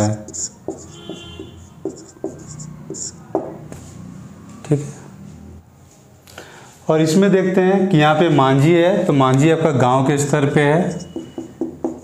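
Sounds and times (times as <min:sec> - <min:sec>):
marker squeaking on whiteboard: 0:00.0 - 0:03.8, 0:10.4 - 0:12.0.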